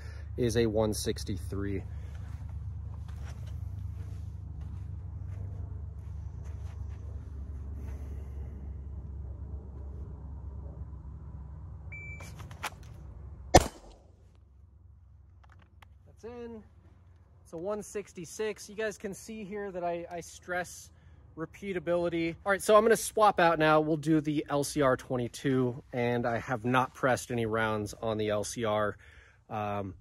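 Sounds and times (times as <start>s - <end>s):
steady low rumble: 0.0s - 30.0s
shot timer beep: 11.9s - 12.3s
pistol shot: 13.5s - 14.1s.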